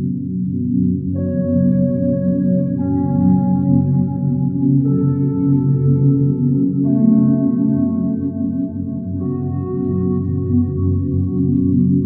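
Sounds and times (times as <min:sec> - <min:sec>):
lo-fi ambient music: 0:00.0 - 0:12.0.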